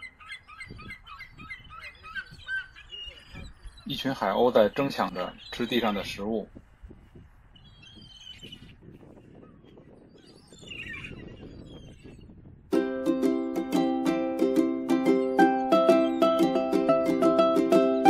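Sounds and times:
plucked-string background music: 12.7s - 18.0s.

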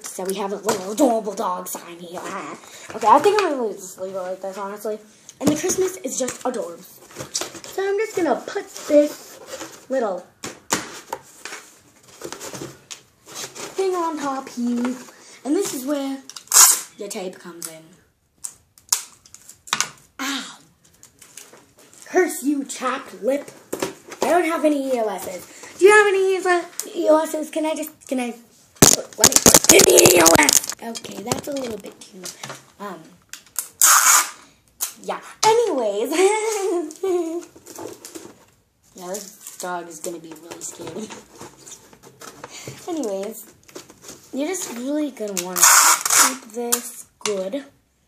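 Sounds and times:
cardboard rustling: 5.5s - 15.8s, 28.8s - 32.0s.

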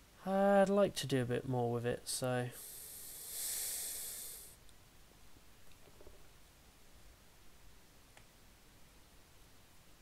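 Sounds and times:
breath close to microphone: 2.6s - 4.6s.

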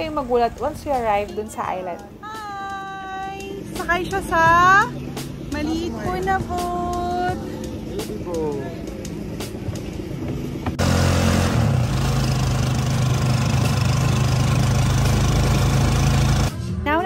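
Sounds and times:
small motorcycle engine droning: 10.6s - 16.6s.

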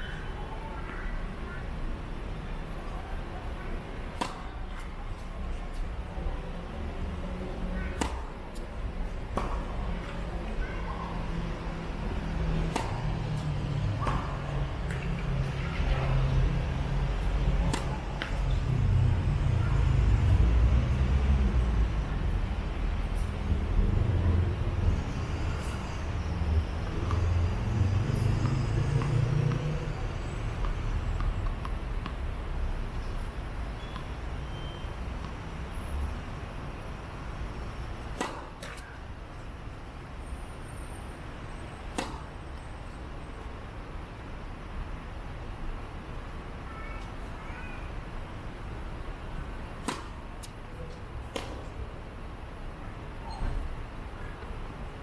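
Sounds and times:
racket hitting tennis ball: 4.1s - 4.9s, 7.9s - 8.6s, 9.3s - 10.2s, 12.4s - 15.7s, 17.3s - 18.5s, 38.1s - 39.0s, 41.9s - 42.4s, 49.8s - 51.8s.

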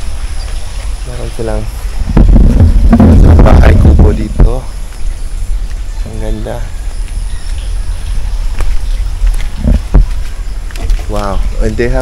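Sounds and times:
low rumble: 0.0s - 11.8s.

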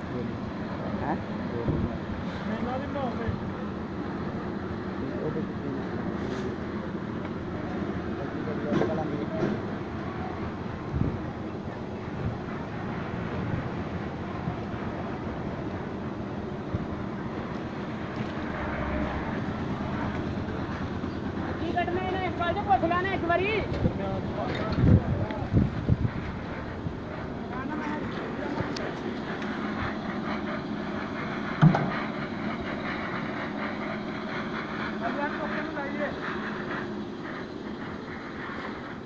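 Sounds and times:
machine rumble: 0.0s - 39.0s
voices: 0.0s - 39.0s
loud knocks: 31.6s - 31.9s.

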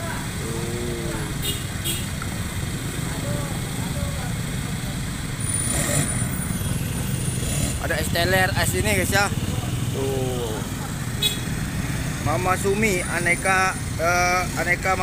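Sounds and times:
faint voices: 0.0s - 1.4s
motorcycle engines rumbling: 0.0s - 15.0s.

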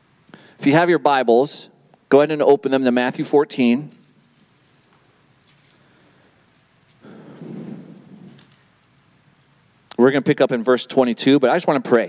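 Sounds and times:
breath into microphone: 0.3s - 0.6s, 7.0s - 8.5s.

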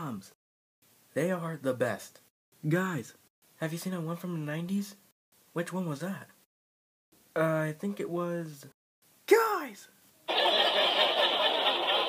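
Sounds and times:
studio audience laughing: 10.3s - 12.0s.

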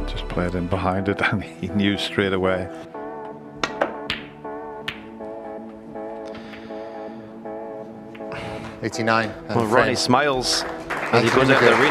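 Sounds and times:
snooker balls clicking: 3.6s - 5.8s, 8.1s - 8.7s.

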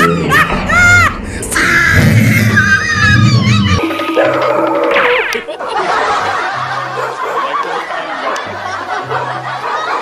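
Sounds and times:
laughter: 0.0s - 0.6s, 5.5s - 10.0s.

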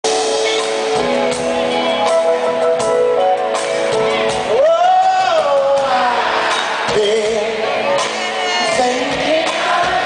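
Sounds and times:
guitar: 0.0s - 10.0s
live band playing sustained chords: 0.0s - 10.0s.

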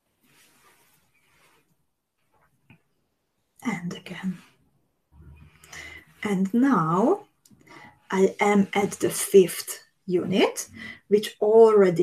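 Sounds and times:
thread rustling through beads: 0.0s - 2.7s.

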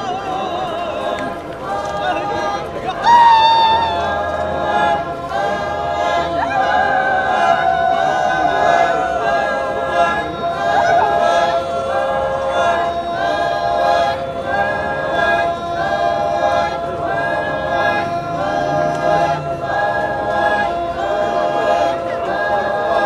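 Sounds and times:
group singing unaccompanied: 0.0s - 23.0s.

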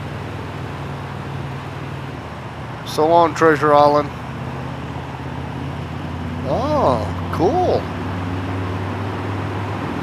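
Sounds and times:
motorcycle engine cruising: 0.0s - 10.0s
road and wind noise: 0.0s - 10.0s.

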